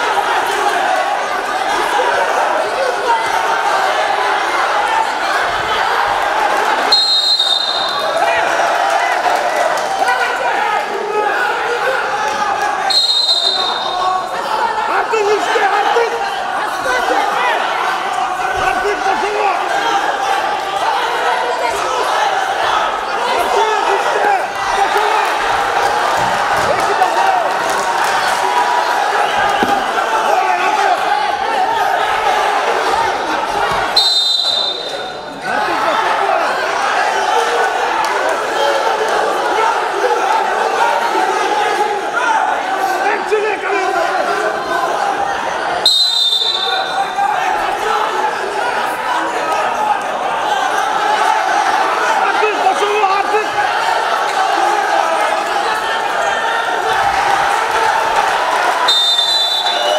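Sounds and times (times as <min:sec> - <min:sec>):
people shouting: 0:00.0 - 0:59.9
referee's whistle: 0:06.9 - 0:08.2, 0:12.8 - 0:14.1, 0:33.9 - 0:35.2, 0:45.8 - 0:47.2, 0:58.8 - 0:59.9.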